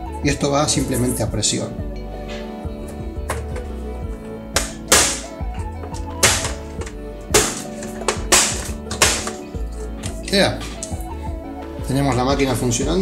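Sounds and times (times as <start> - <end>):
background music: 0.0 - 13.0.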